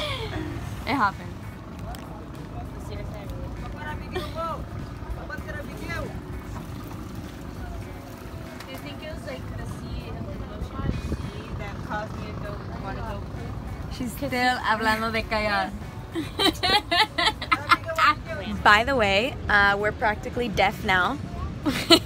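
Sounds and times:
boat engine low rumble: 0.0s - 22.0s.

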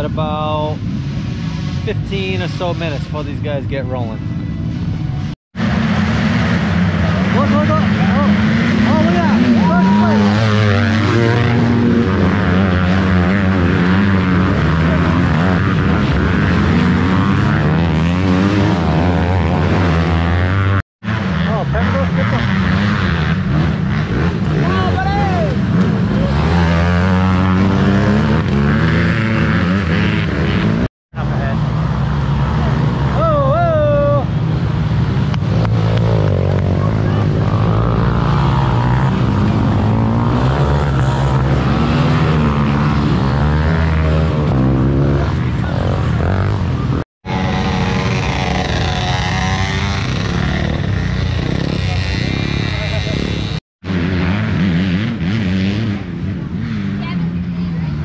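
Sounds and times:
quad engines revving past: 5.6s - 58.0s.

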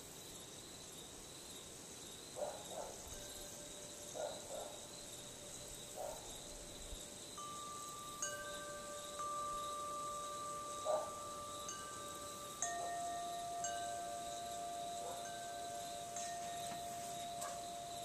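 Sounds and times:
metal tube wind chime ringing: 4.8s - 18.0s.

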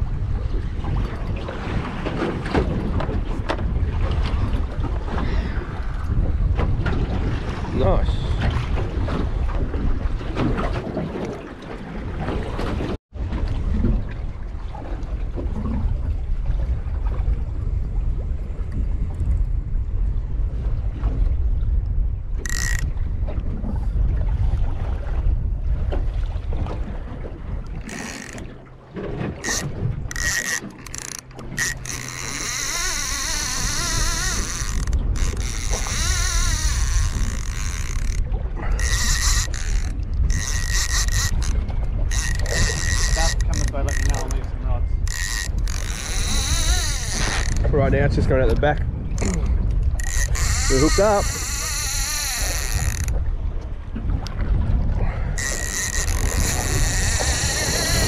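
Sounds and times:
wind buffeting microphone: 0.0s - 58.0s
fishing reel drag clicking: 22.4s - 22.9s, 27.8s - 28.5s, 29.4s - 47.7s, 49.2s - 53.2s, 55.4s - 58.0s.

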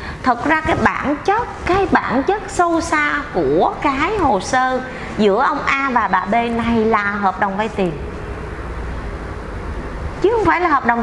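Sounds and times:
low background rumble: 0.0s - 11.0s.

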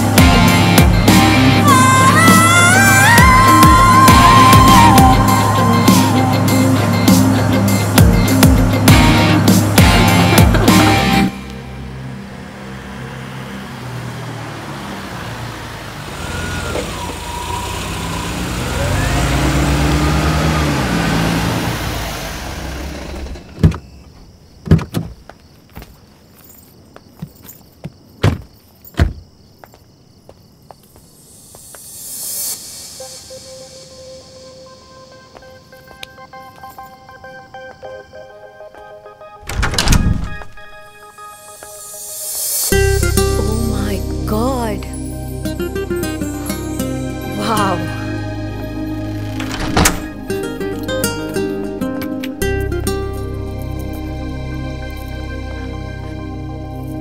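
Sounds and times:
film soundtrack music: 0.0s - 15.5s, 31.6s - 57.0s
car doors being shut: 23.1s - 25.2s, 28.2s - 29.2s, 49.2s - 50.2s.

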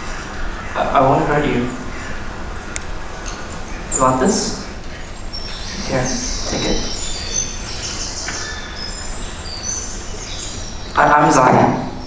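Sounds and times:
high chirping calls: 0.0s - 12.0s.

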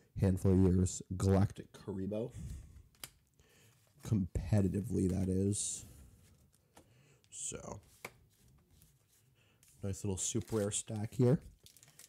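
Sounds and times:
cards rustling and tapping: 2.9s - 5.7s, 6.3s - 12.0s.

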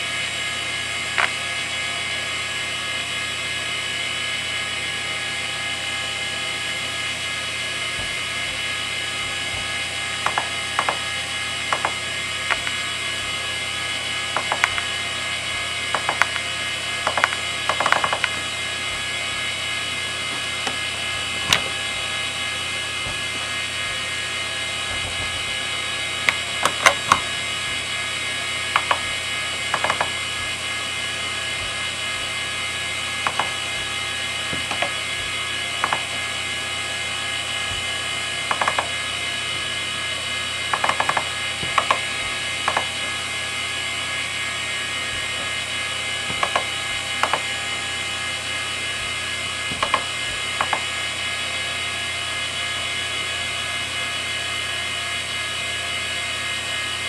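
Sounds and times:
hard drive whine: 0.0s - 57.0s
hard drive head clicks: 10.2s - 11.0s, 11.7s - 12.8s, 14.4s - 14.9s, 15.9s - 18.4s, 28.8s - 29.0s, 29.7s - 30.2s, 33.2s - 33.6s, 35.8s - 36.1s, 38.5s - 38.9s, 40.7s - 42.0s, 42.7s - 42.9s, 46.3s - 47.4s, 49.7s - 50.9s.

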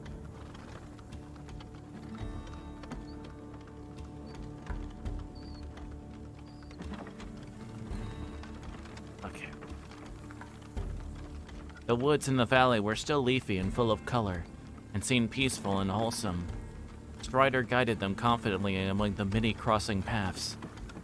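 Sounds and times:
ambient music with held tones: 0.0s - 21.0s.

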